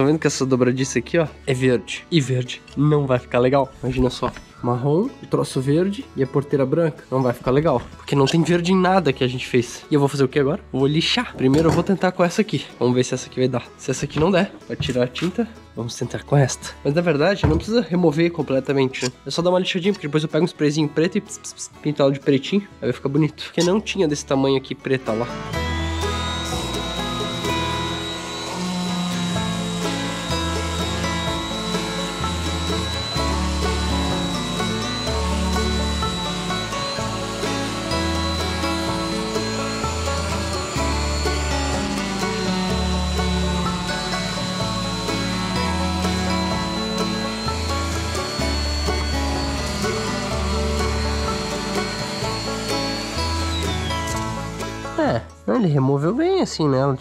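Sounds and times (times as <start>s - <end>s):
orbital sander whining: 25.1s - 55.0s.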